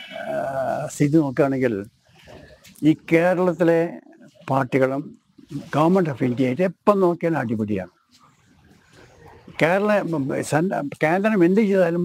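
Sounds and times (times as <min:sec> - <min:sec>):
man speaking: 0:00.0 - 0:01.9, 0:02.8 - 0:08.0, 0:09.6 - 0:12.0.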